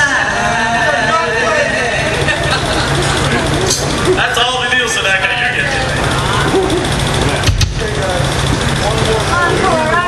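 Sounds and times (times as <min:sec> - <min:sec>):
people chattering: 0:00.0 - 0:10.0
steady low hum: 0:00.0 - 0:10.0
sharp thump: 0:07.4 - 0:07.9.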